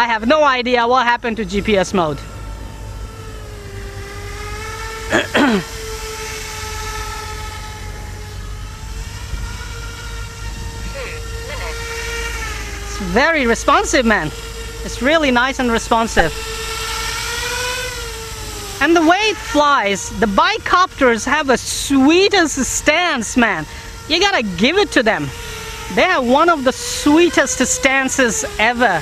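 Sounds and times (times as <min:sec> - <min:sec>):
electric rotors whining: 0:00.0 - 0:29.0
wind rumble on microphone: 0:08.0 - 0:11.3.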